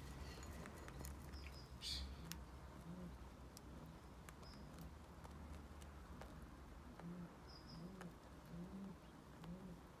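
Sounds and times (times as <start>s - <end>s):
pigeon cooing: 2.8s - 3.2s, 6.9s - 10.0s.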